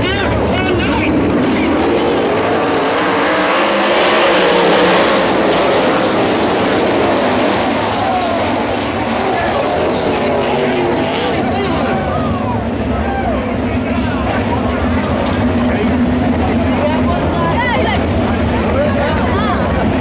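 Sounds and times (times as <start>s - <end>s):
race car engines accelerating: 0.0s - 20.0s.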